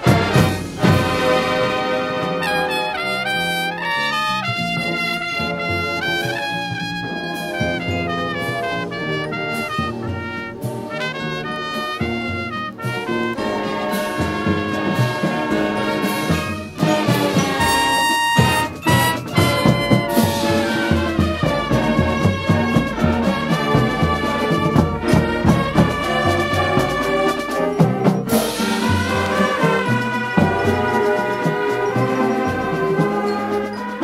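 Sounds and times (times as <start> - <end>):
marching band playing: 0.0 - 34.0.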